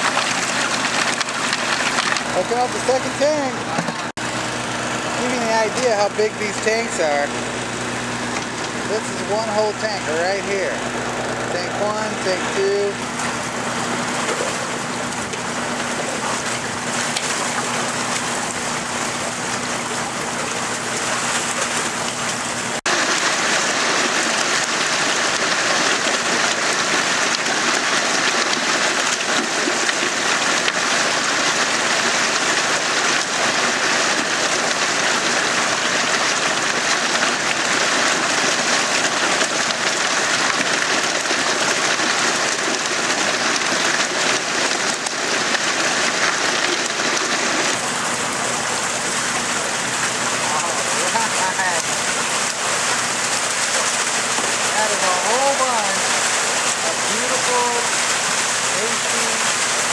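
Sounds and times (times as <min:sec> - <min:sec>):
churning aerated water: 0:00.0 - 0:59.9
water rushing and splashing: 0:00.0 - 0:59.9.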